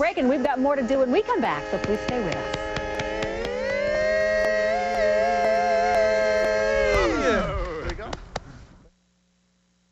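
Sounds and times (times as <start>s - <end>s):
men singing a cappella: 1.4s - 7.8s.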